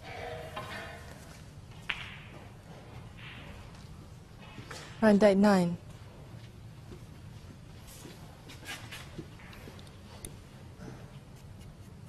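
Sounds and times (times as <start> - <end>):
snooker balls rolling: 0.0 - 4.8.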